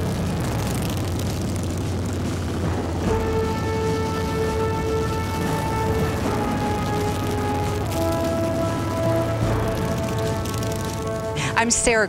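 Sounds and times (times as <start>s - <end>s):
motorcycles riding past: 0.0s - 12.0s.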